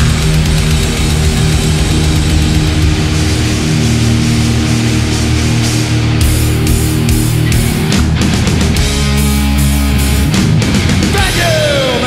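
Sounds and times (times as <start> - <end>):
bass guitar: 0.0 - 12.0
distorted electric guitars: 0.0 - 12.0
drums: 0.0 - 12.0.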